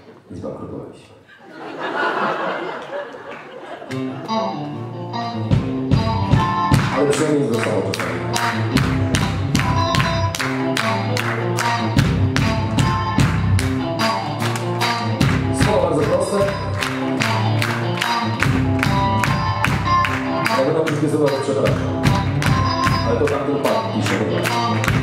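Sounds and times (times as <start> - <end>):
electric guitar: 3.9 - 25.0
bass line: 4.0 - 25.0
steady ticking beat: 5.4 - 25.0.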